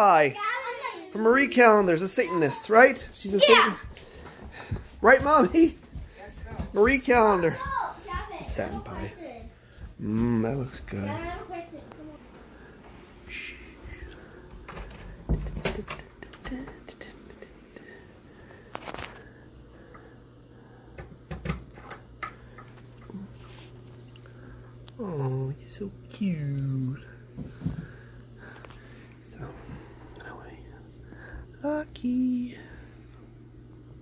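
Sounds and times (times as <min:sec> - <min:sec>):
soft whispering: 0:16.3 - 0:18.1, 0:29.3 - 0:32.9
man calling in sing-song tone: 0:31.6 - 0:32.7.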